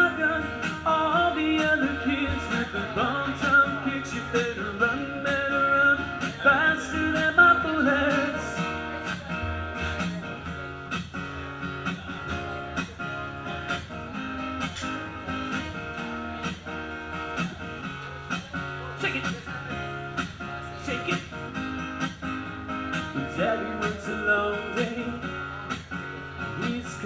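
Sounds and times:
guitar strummed: 0.0s - 27.0s.

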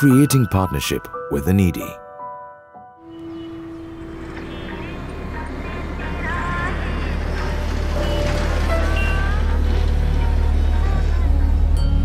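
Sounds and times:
deep traffic rumble: 3.0s - 12.0s.

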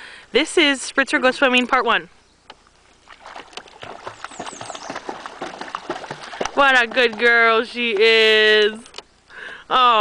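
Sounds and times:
dog splashing in water: 3.0s - 8.6s.

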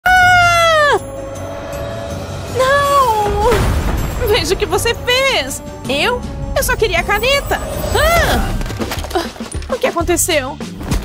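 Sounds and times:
woman screaming: 0.0s - 1.1s, 7.9s - 8.6s.

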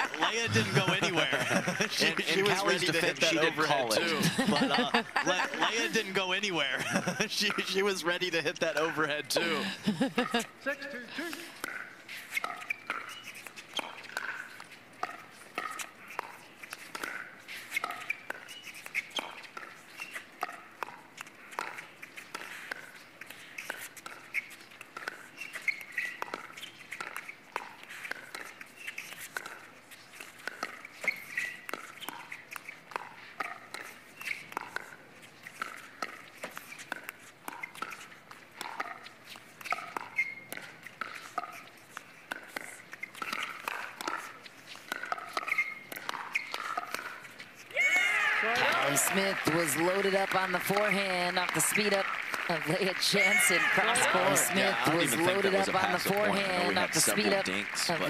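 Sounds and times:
voices in background: 0.0s - 10.0s, 47.8s - 58.0s.

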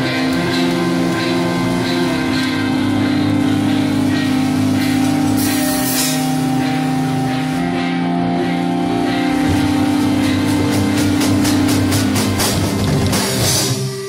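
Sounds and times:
drums: 0.0s - 14.0s
electric guitars holding chords: 0.0s - 14.0s.

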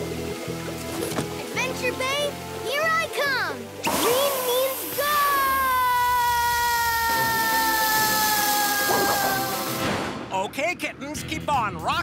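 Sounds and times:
cartoon background music: 0.0s - 12.0s
jet spray hissing: 7.1s - 10.0s.

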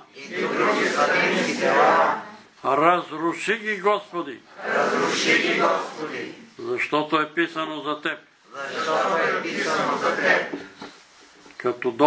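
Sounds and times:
congregation praying in unison: 0.0s - 12.0s.

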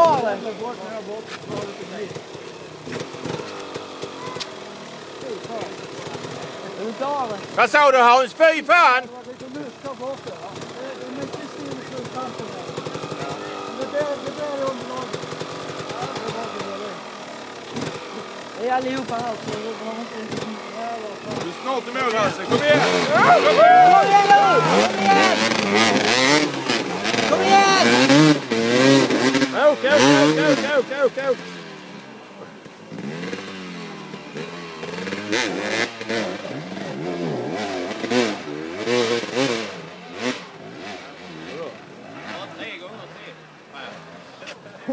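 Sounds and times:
motorcycle engine revving: 0.0s - 44.9s
spectators shouting: 22.0s - 28.6s.

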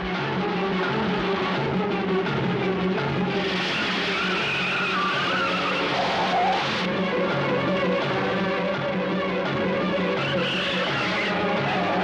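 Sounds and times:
background film music: 0.0s - 12.0s
car tyres squealing: 3.3s - 6.9s, 9.8s - 12.0s.

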